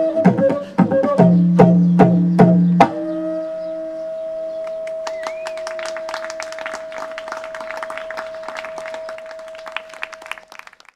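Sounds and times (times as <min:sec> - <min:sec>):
flute long note: 0:00.0 - 0:10.7
audience clapping: 0:04.7 - 0:10.9.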